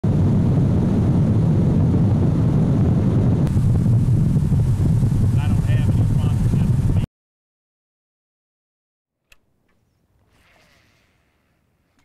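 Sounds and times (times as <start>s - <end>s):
wind on microphone: 0.0s - 7.1s
outboard motor rumbling: 0.1s - 7.1s.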